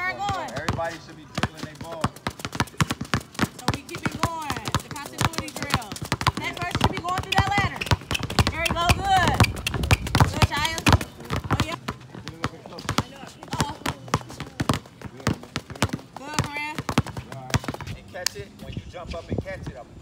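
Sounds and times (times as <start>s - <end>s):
basketballs bouncing on hard court: 0.0s - 18.1s
voices calling out: 0.0s - 18.9s.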